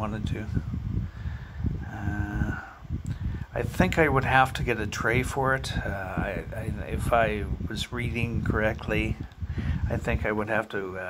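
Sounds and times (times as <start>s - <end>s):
low steady rumble: 0.0s - 11.0s
man humming: 1.8s - 2.8s.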